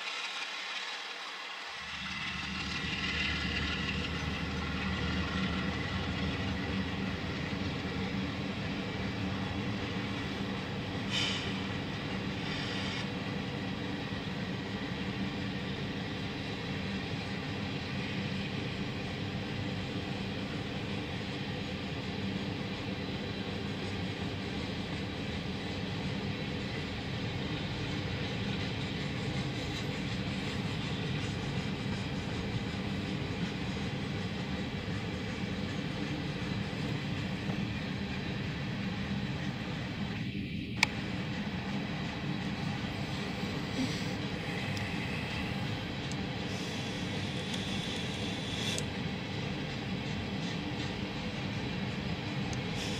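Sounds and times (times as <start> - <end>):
train cars rolling over rails: 0.0 - 52.9.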